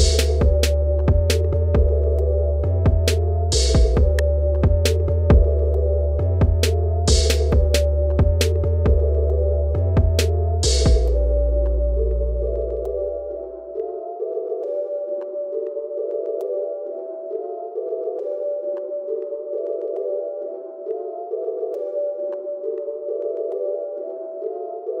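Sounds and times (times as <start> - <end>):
deep bass: 0.0 - 13.5
rap beat melodic loop: 0.0 - 25.0.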